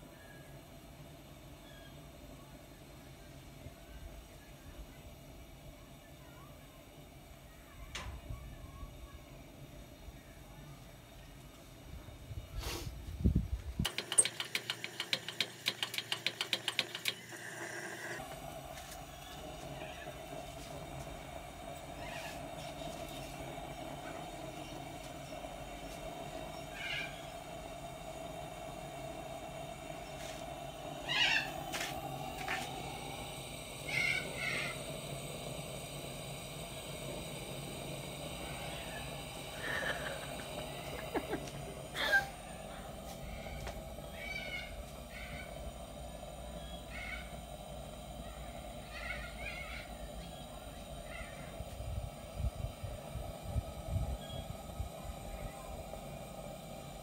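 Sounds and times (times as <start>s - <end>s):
pressure lantern hissing: 0.0s - 57.0s
sharp clicks: 13.8s - 17.3s
short high animal calls: 22.0s - 22.4s, 26.7s - 27.2s, 31.0s - 31.6s, 33.9s - 34.8s.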